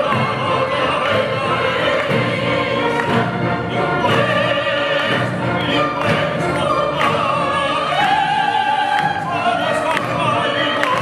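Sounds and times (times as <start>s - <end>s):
chorus singing: 0.0s - 11.0s
opera duet singing: 0.0s - 11.0s.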